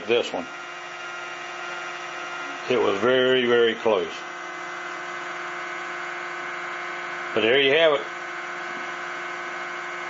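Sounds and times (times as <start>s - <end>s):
pulse motor buzzing whine: 0.0s - 10.0s.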